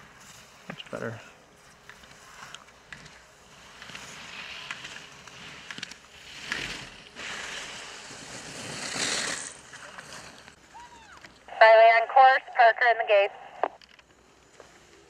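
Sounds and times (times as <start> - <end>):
ski edges scraping on snow: 0.0 - 10.6.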